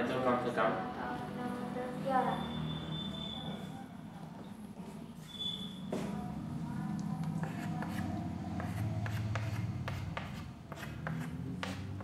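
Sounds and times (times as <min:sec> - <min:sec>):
writing scratches on a board: 0:07.2 - 0:12.0.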